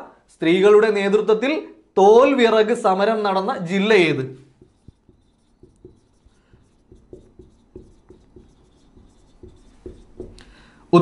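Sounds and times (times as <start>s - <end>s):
marker writing on whiteboard: 4.0s - 10.7s.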